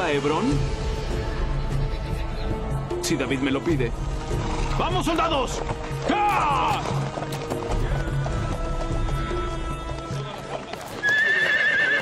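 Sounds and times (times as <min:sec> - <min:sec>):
background music with sustained notes: 0:00.0 - 0:12.0
horses galloping: 0:04.0 - 0:12.0.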